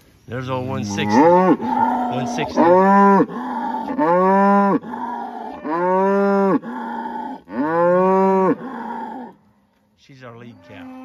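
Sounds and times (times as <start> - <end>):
cow mooing: 0.8 - 9.3, 10.5 - 11.0.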